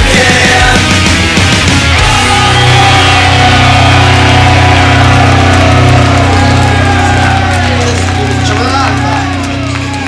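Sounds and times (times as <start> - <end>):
sustained electric guitar chord: 2.0 - 10.0.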